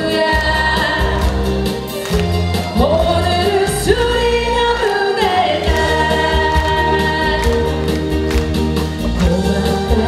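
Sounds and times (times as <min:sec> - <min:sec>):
woman singing: 0:00.0 - 0:01.6, 0:02.7 - 0:08.2, 0:09.0 - 0:10.0
pop backing track with bass: 0:00.0 - 0:10.0.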